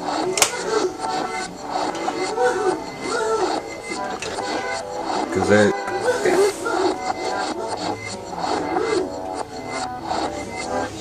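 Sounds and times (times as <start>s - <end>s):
metal spoon scraping: 0.0s - 6.0s
background music: 0.0s - 11.0s.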